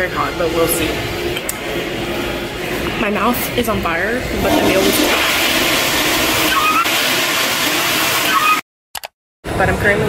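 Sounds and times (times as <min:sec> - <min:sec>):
toilet flushing: 0:04.3 - 0:08.6.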